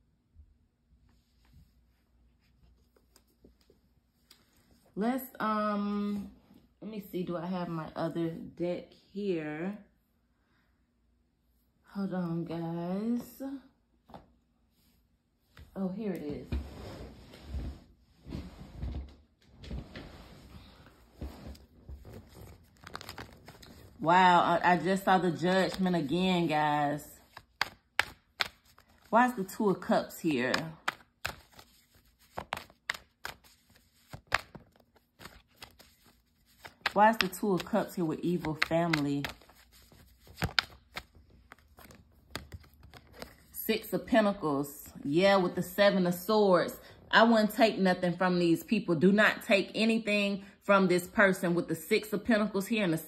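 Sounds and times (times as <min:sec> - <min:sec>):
cards rustling and clicking: 0:21.2 - 0:24.0, 0:27.2 - 0:43.6.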